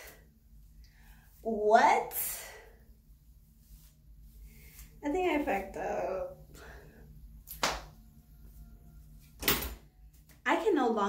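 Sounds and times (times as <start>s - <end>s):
sharp smack: 7.5s - 7.9s.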